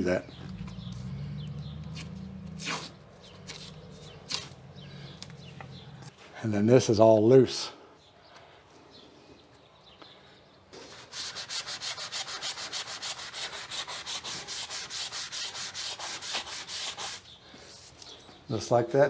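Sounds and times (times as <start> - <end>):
hand rubbing on wood: 0.6 - 6.1, 10.8 - 18.0.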